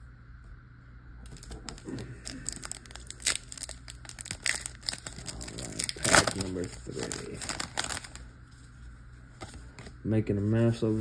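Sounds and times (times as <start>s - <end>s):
foil wrapper crinkling and tearing: 1.3s - 8.3s.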